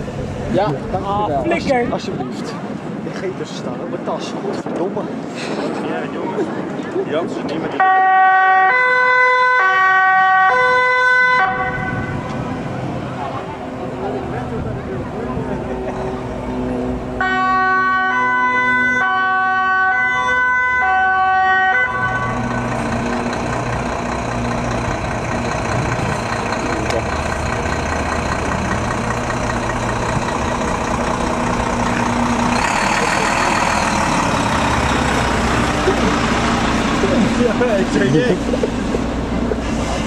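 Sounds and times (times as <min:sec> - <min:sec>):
diesel engine running: 0:00.0 - 0:02.8, 0:11.3 - 0:40.0
truck road noise passing: 0:00.0 - 0:03.7, 0:05.0 - 0:40.0
two-tone fire truck siren: 0:07.8 - 0:12.6, 0:17.2 - 0:35.9.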